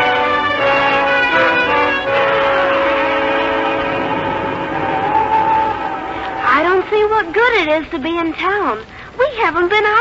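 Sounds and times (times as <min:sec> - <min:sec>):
orchestral music held chords: 0:00.0 - 0:07.0
high sustained note: 0:01.3 - 0:06.9.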